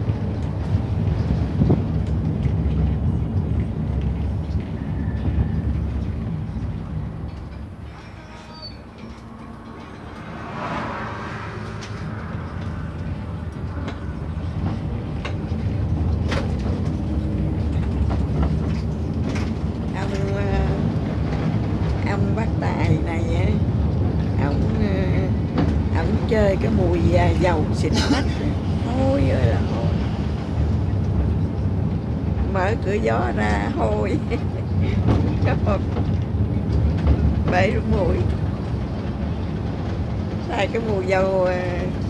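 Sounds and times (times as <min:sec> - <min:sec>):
bus engine rumble: 0:00.0 - 0:42.0
woman laughing and talking: 0:27.5 - 0:29.0, 0:33.5 - 0:35.8.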